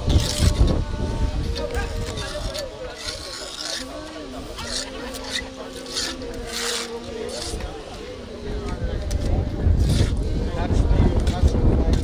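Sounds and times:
trowels scraping wet mortar: 0.0 - 10.4.

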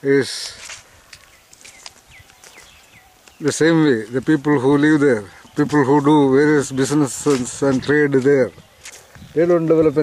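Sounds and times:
small bird chirping: 1.1 - 10.0.

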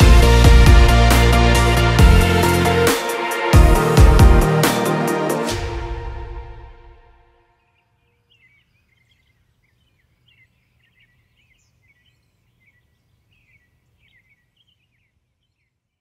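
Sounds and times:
faint birds chirping: 7.6 - 16.0.

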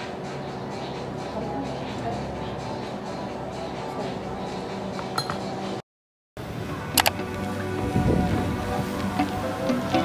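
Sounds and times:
cutlery clinking on tableware: 5.2 - 5.5.

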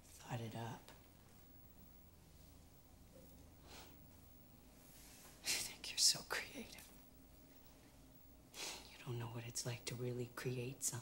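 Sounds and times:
woman whispering: 0.2 - 1.0, 5.4 - 7.0, 8.8 - 11.0.

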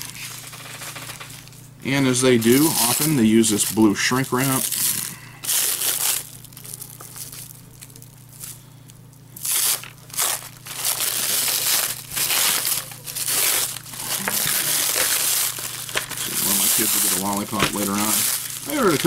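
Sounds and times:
plastic shrink wrap crinkling: 0.0 - 1.6, 2.2 - 8.6, 9.4 - 19.0.

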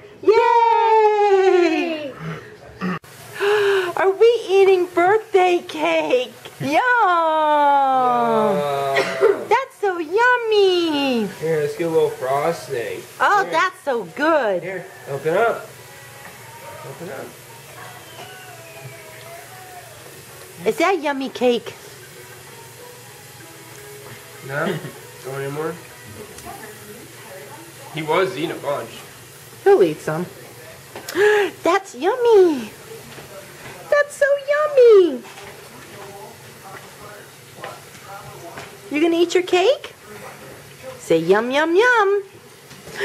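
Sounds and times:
person gasping: 2.1 - 4.0, 31.1 - 31.6.

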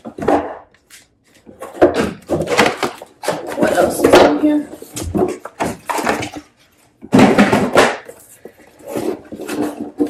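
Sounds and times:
wooden pieces knocking: 1.5 - 10.0.

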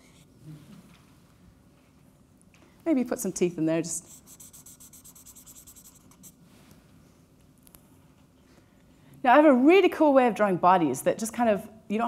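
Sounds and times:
marker pen scratching on paper: 4.1 - 6.4.

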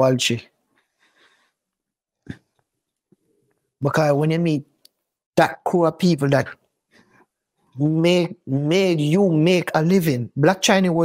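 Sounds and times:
faint breath: 0.8 - 1.6.

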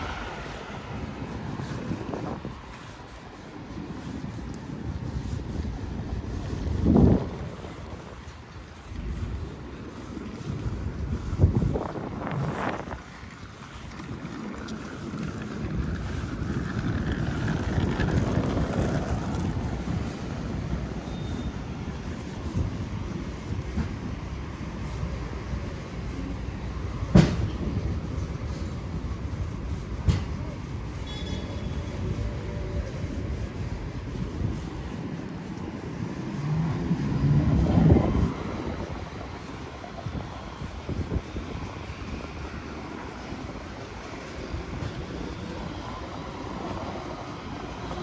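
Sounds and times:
city street noise: 0.0 - 48.0
passing vehicle rumble: 0.0 - 48.0.

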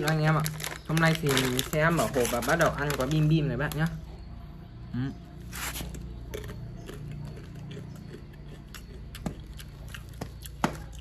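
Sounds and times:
snack bag rustling: 0.0 - 4.0
crunchy snack chewing: 5.4 - 11.0.

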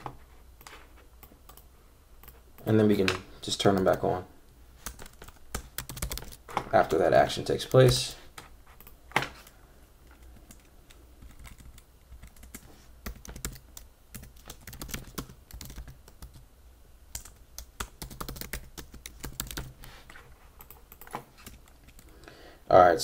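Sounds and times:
typing on computer keyboard: 4.8 - 6.4, 10.2 - 16.4, 17.1 - 19.8.

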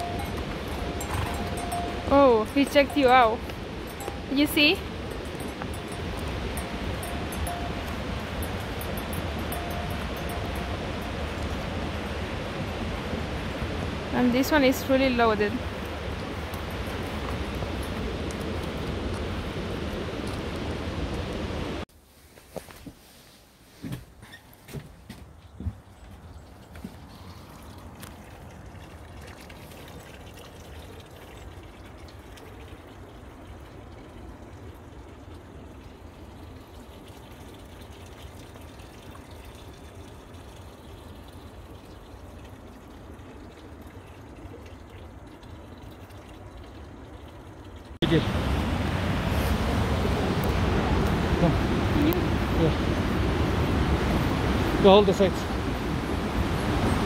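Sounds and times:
rush of flowing water: 0.0 - 21.9, 26.4 - 57.0
faint water-like rush: 0.0 - 23.9, 25.2 - 57.0.

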